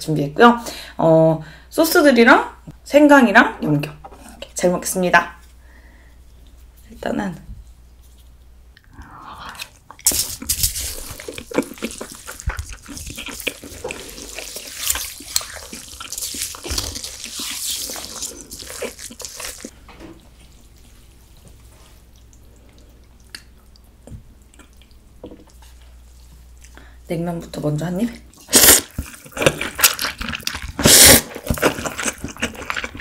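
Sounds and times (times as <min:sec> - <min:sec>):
slushy ice sloshing and crackling: 0:10.1 - 0:19.7.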